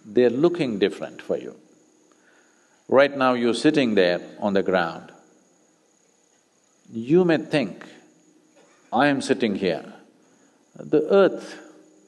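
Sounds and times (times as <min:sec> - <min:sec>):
background hiss: 0:00.0 - 0:12.0
crickets chirring: 0:00.0 - 0:12.0.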